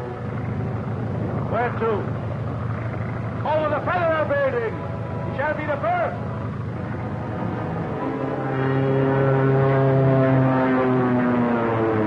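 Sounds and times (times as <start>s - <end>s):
propeller airplane engine humming: 0.0s - 12.0s.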